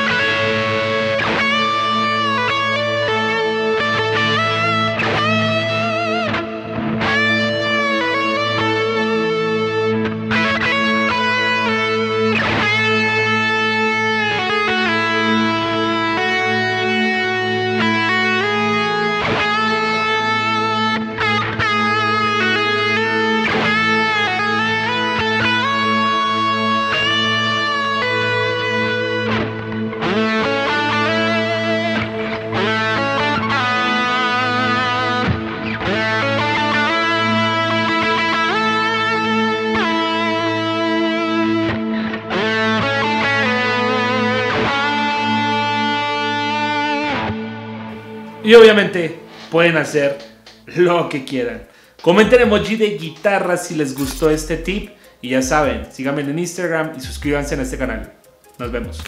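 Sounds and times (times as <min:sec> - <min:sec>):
electric guitar lead line: 0:00.0 - 0:59.0.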